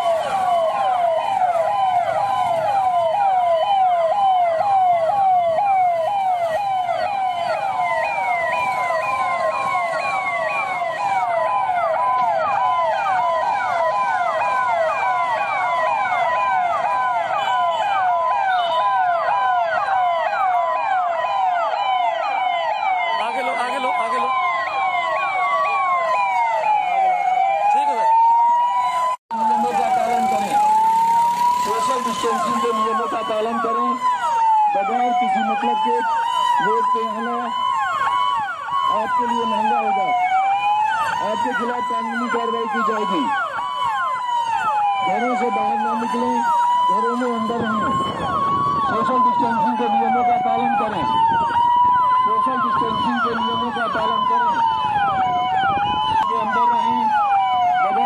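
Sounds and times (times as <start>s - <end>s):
police siren wail: 0.0s - 58.0s
police siren yelp: 0.0s - 58.0s.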